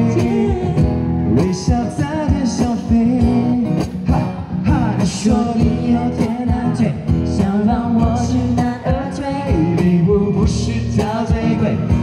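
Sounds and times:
acoustic guitars strummed: 0.0 - 12.0
person singing into microphone: 0.0 - 12.0.

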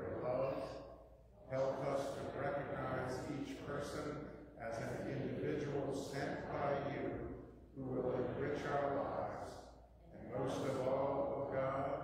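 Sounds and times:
man chanting recitation: 1.5 - 12.0.

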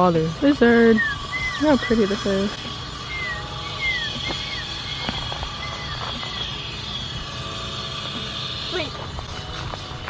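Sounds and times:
birds whistling calls: 0.0 - 9.0
high-pitched drone: 0.0 - 10.0.

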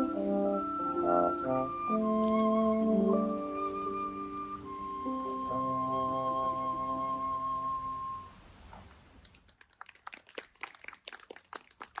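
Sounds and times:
audience clapping: 9.0 - 12.0.

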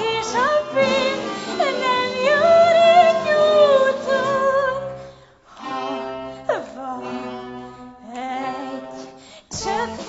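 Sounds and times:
small orchestra playing: 0.0 - 10.0.

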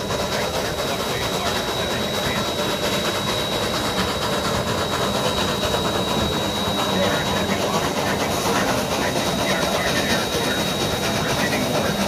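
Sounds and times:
steady high whine: 0.0 - 12.0
steam locomotive exhaust beat: 0.0 - 12.0
train rumble and clatter: 0.0 - 12.0.

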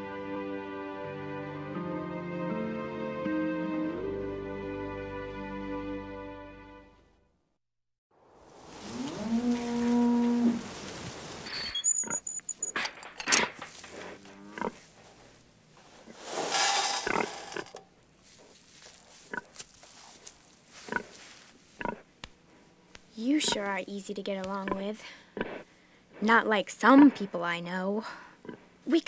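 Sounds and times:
feed pouring rustle: 8.5 - 11.8, 16.2 - 21.5
cow mooing: 8.8 - 10.6, 14.0 - 14.8.

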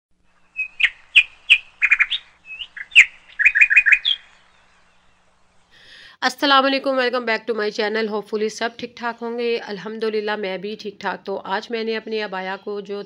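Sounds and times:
small bird chirping: 0.2 - 5.8.

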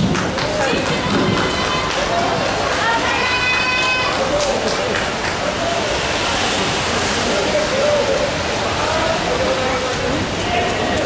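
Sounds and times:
rain on wet paving: 0.0 - 11.0.

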